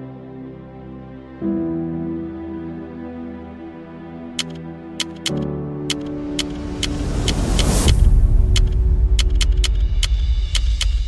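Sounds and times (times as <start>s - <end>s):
keystroke clicks: 4.4s - 11.0s.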